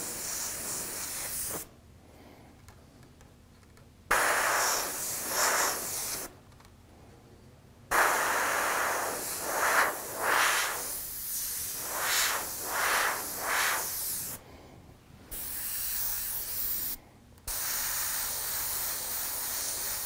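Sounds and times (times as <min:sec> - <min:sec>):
airbrush spraying hiss: 0:00.0 - 0:01.7, 0:04.1 - 0:06.3, 0:07.9 - 0:14.4, 0:15.3 - 0:20.0.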